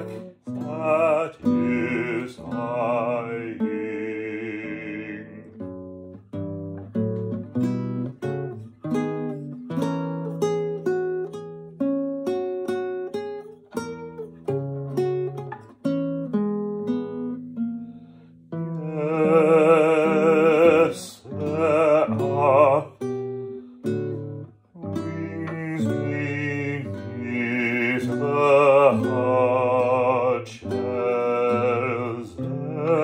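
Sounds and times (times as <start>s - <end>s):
man singing with vibrato: 0.0s - 5.7s, 18.7s - 23.2s, 24.8s - 33.0s
classical guitar plucked notes: 0.0s - 33.0s.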